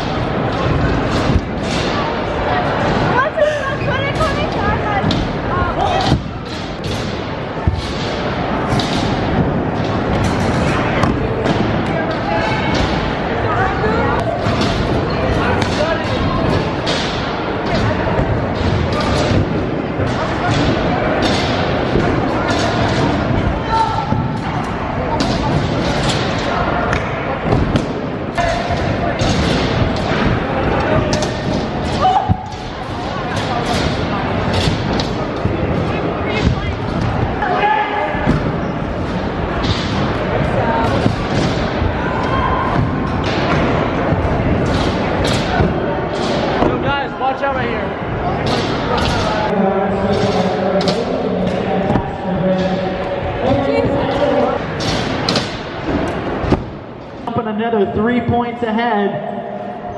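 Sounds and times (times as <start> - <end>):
babble of voices: 0.0 - 57.3.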